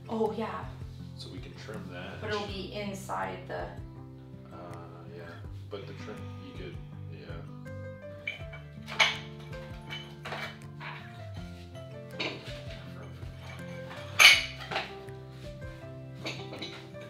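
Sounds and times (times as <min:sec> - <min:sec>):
background music: 0:00.0 - 0:17.0
ceramic tiles clinking: 0:08.2 - 0:11.1.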